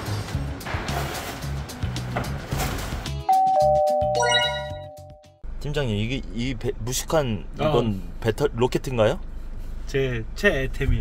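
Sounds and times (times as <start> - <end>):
bell-like strike: 3.3 - 5.2
two-note ding-dong chime: 3.3 - 5.3.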